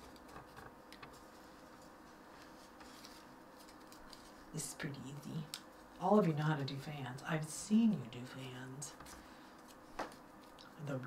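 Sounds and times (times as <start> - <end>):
paper crinkling as folded: 0.0 - 4.5.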